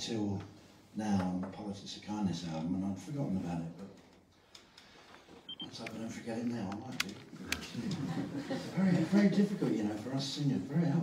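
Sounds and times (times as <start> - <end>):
man talking into microphone: 0.0 - 4.0, 5.6 - 11.0.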